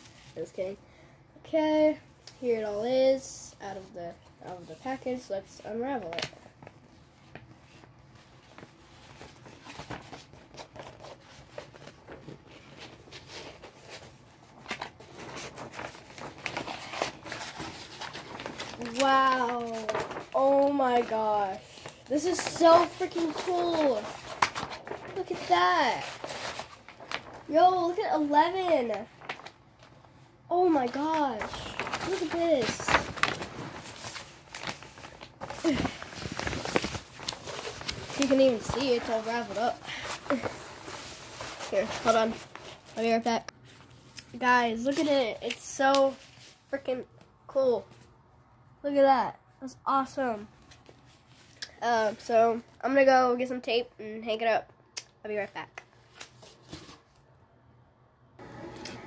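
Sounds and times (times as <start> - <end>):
paper poster rustling: 1.6 - 48.1, 55.4 - 57.2.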